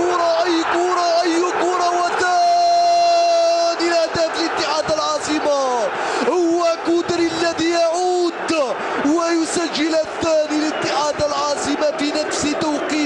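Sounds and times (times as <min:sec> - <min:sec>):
commentator shouting excitedly: 0:00.0 - 0:13.0.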